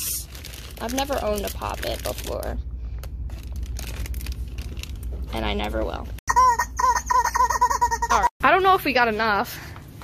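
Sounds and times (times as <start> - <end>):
rubber chicken toy squawking: 6.3 - 8.3.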